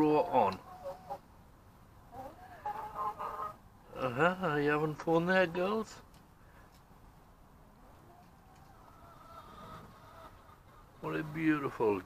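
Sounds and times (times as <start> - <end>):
chickens clucking: 0.0 - 1.3, 2.0 - 5.6, 7.8 - 12.0.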